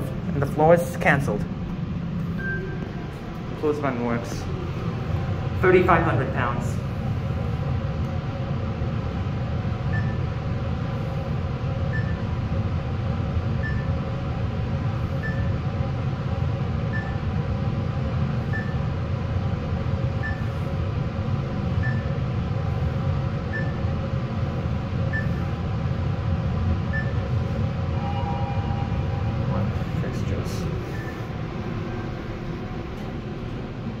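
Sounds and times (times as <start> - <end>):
elevator ride noise: 0.0 - 34.0
short high beep: 28.0 - 29.6.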